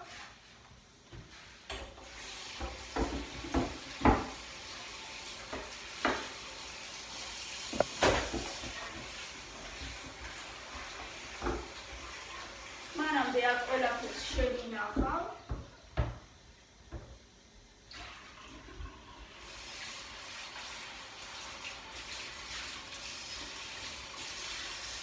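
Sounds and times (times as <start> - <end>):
cutting board being scrubbed: 0.0 - 3.4
tap running into metal sink: 2.6 - 4.4, 7.7 - 9.2
board knocking against sink: 2.9 - 4.4, 5.5 - 6.3, 7.7 - 8.8.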